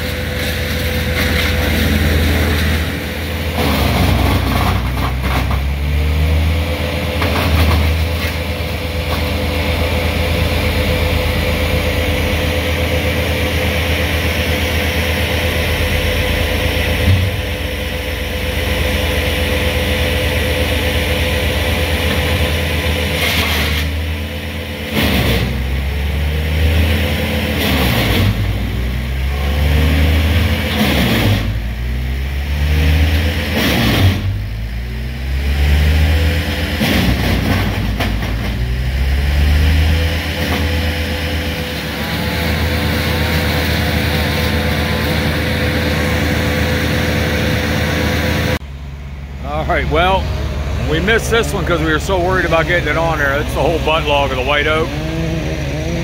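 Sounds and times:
diesel engine running and revving: 0.0s - 56.0s.

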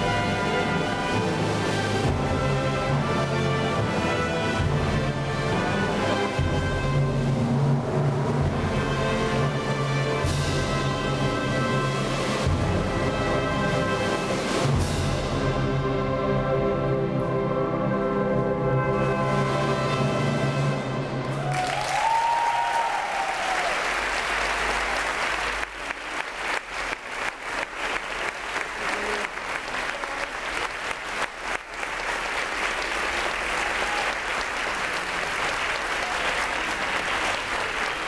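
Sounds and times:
audience applause: 21.2s - 38.0s.

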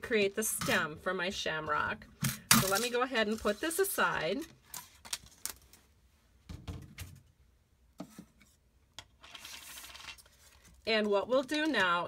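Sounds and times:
soft paper rustle: 2.6s - 5.9s, 9.2s - 12.0s.

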